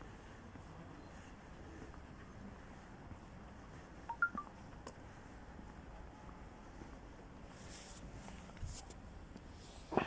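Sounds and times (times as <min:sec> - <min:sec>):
quick beeps of different pitch: 0:04.1 - 0:04.5.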